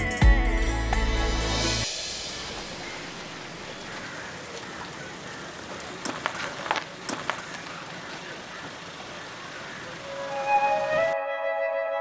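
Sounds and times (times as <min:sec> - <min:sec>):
outdoor background hiss: 0:00.0 - 0:11.7.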